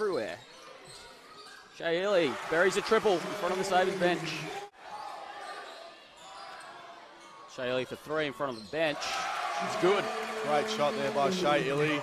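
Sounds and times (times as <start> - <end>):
commentator speaking: 9.6 - 12.0.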